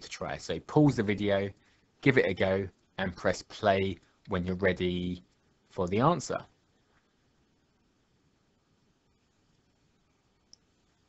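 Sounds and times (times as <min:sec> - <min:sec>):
faint click: 0:10.4 - 0:10.7.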